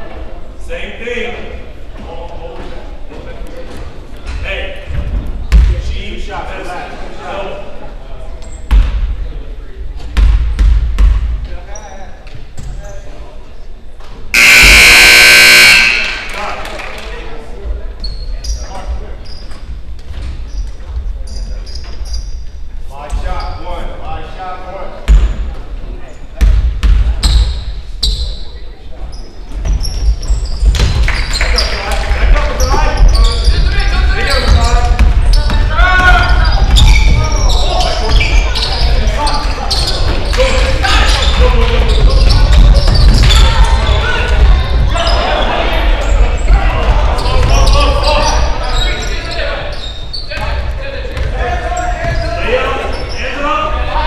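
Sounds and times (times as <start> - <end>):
scoreboard horn: 14.3 - 16.5
echoing voices: 31.4 - 54.0.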